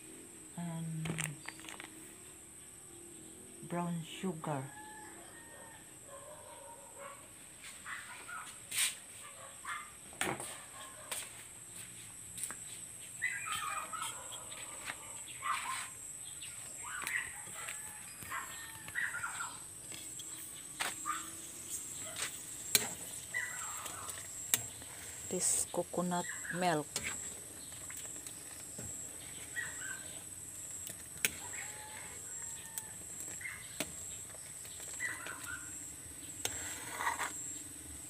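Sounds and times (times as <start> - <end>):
birds calling: 13.0 - 37.7.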